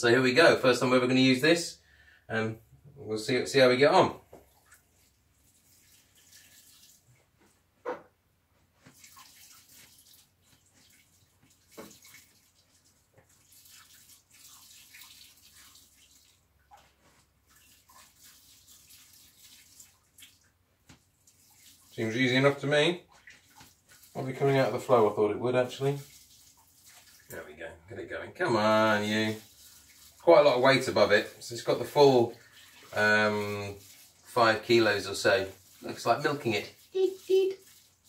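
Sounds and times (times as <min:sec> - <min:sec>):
grain trickling hiss: 0:05.4 - 0:07.0, 0:25.6 - 0:27.4, 0:28.5 - 0:38.0.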